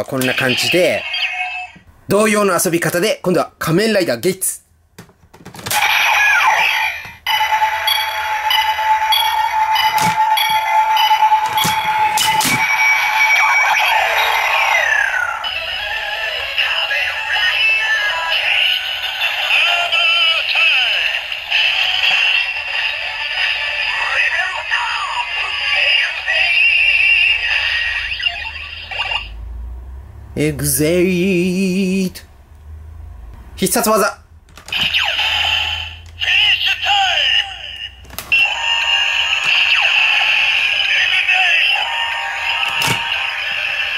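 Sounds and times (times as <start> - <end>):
electronic toy music and effects: 0.2 - 1.8, 5.8 - 29.4, 34.7 - 43.9.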